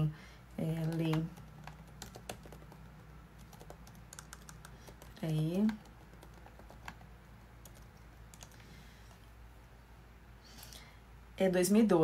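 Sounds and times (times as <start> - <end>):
faint keyboard typing: 0.5 - 9.2.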